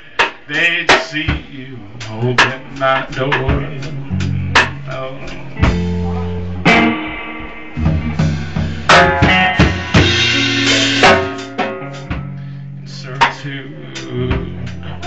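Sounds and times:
drum kit striking: 0.2s - 12.4s
sustained guitar chords: 1.5s - 15.0s.

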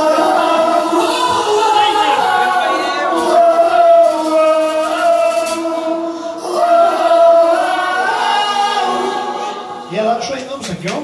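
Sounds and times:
audience clapping: 10.3s - 11.0s.

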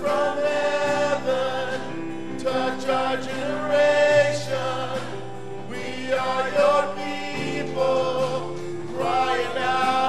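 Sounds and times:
church choir singing a hymn: 0.0s - 10.0s.

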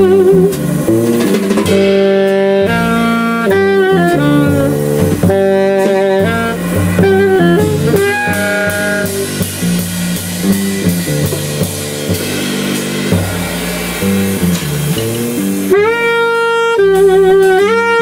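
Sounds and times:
alto saxophone: 0.0s - 18.0s
double bass: 0.0s - 18.0s
drum kit: 0.0s - 18.0s.

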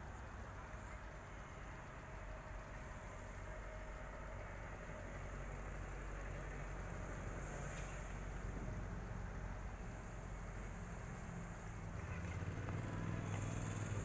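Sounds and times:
vehicle engines idling and running: 0.0s - 14.0s.

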